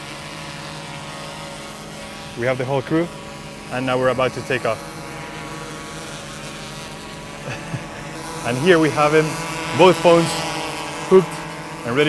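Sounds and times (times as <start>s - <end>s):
quadcopter propellers humming: 0.0s - 12.0s.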